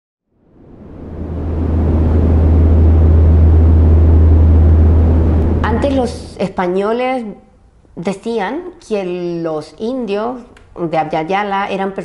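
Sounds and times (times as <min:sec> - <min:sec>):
loud rough low drone: 0:00.4 - 0:06.5.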